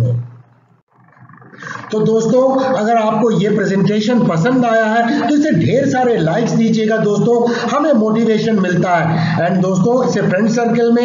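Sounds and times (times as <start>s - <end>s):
man's rough drawn-out vocal sound: 1.6s - 11.0s
man speaking: 1.9s - 11.0s.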